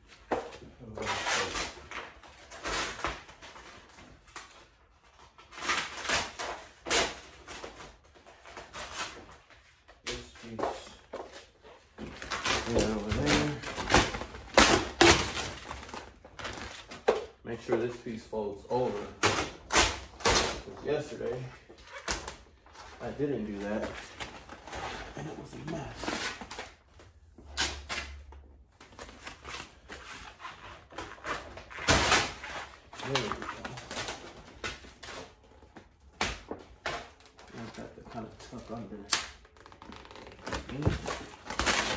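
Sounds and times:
vinyl film crackling: 0:00.1 - 0:41.9.

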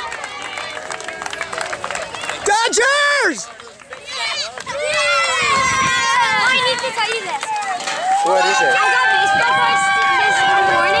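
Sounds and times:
children yelling: 0:04.0 - 0:11.0.

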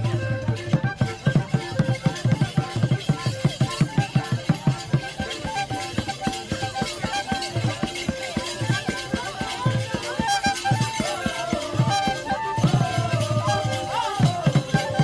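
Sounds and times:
quick even drum beats: 0:00.0 - 0:15.0
melody of short held notes: 0:04.6 - 0:15.0.

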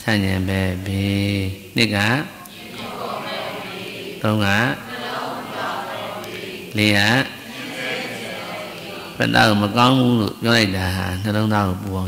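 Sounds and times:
man chanting: 0:00.0 - 0:02.8, 0:04.2 - 0:04.9, 0:06.7 - 0:07.5, 0:08.9 - 0:12.0.

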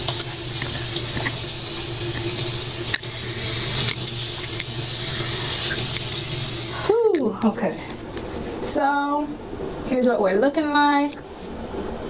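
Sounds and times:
water running from a tap into a sink: 0:00.0 - 0:07.3.

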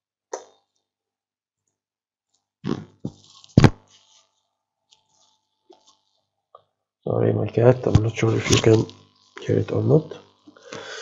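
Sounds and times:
scuffs and knocks near microphone: 0:03.0 - 0:04.3.

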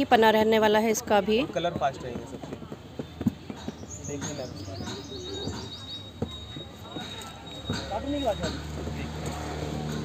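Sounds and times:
faint voices: 0:00.5 - 0:10.0.

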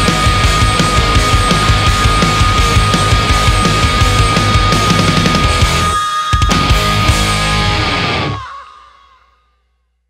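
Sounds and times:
hard rock band final chord: 0:00.0 - 0:08.4.

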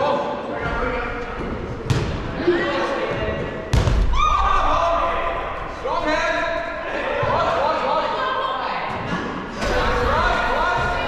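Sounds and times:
dodgeball deep thud: 0:01.4 - 0:02.4, 0:03.3 - 0:04.6
dodgeball sharp knock: 0:01.8 - 0:02.2, 0:03.7 - 0:04.2.

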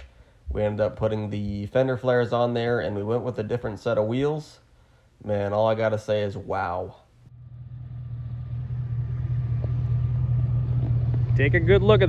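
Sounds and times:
engine idling: 0:07.3 - 0:12.0.

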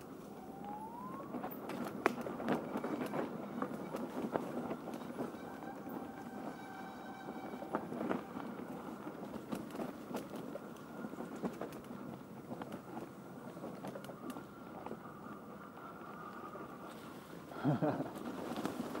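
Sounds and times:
bike tyres rolling through leaves: 0:00.0 - 0:19.0
bike clicks and knocks: 0:01.4 - 0:05.1.

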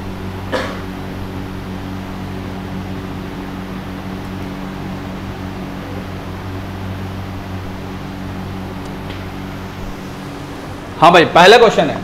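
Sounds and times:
constant hiss: 0:00.0 - 0:12.0
low room hum: 0:00.0 - 0:12.0.

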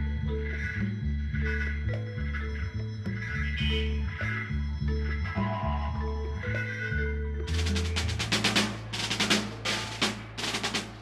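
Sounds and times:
wavering melodic line: 0:00.0 - 0:09.2
electric bass: 0:00.0 - 0:11.0
organ-like chords: 0:00.0 - 0:11.0.

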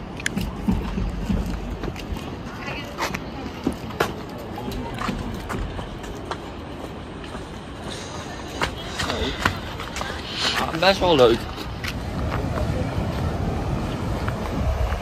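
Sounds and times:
faint chatter of people: 0:00.0 - 0:14.8.

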